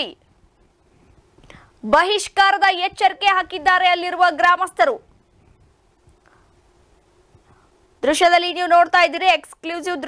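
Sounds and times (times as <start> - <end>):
faint intake of breath: 0.9 - 1.8, 6.2 - 6.6, 7.3 - 7.9.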